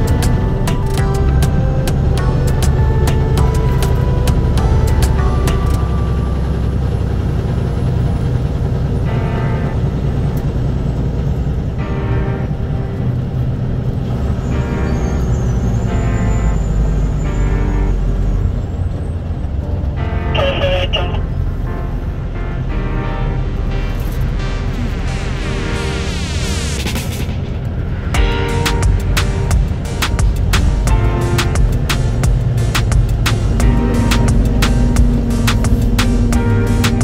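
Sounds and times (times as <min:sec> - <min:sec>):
music playing: 0:00.0 - 0:37.0
vehicle road and engine rumble: 0:00.0 - 0:37.0.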